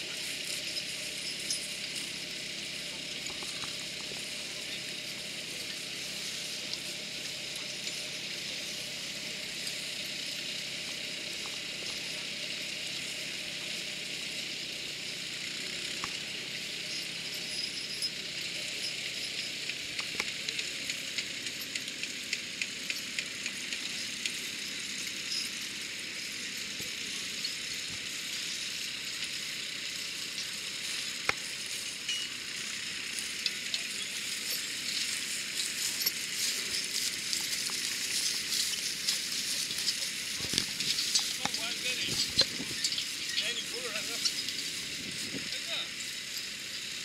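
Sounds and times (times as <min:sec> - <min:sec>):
plough crackling through stubble: 0:00.0 - 0:47.0
steady hiss: 0:00.0 - 0:47.0.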